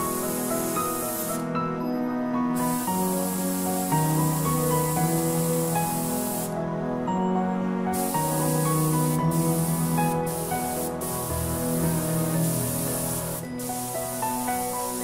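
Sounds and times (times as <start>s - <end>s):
airbrush hissing: 0.0s - 1.7s, 2.4s - 6.6s, 7.9s - 15.0s
background music of sustained notes: 0.0s - 15.0s.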